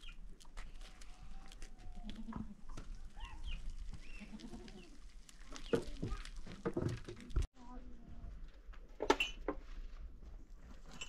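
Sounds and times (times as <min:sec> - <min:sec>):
goat bleating: 0:04.2 - 0:05.0.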